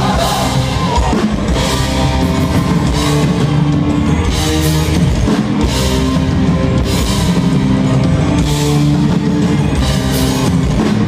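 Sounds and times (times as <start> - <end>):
live metal band playing: 0.0 - 11.0.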